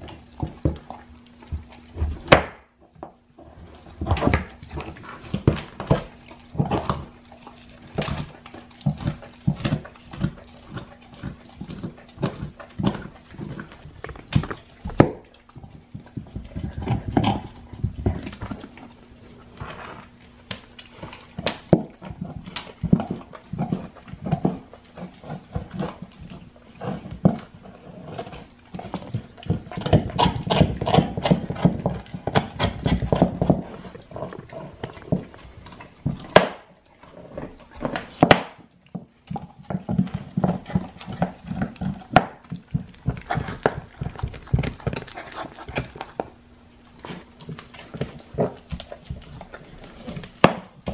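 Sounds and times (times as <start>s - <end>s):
dog chewing bone: 0.0s - 50.9s.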